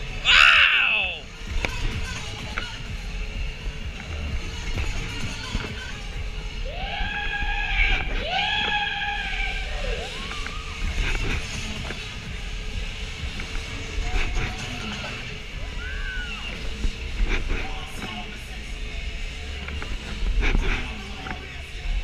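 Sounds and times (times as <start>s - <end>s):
long rising and falling vocal calls: 6.6s - 12.6s, 14.4s - 16.7s.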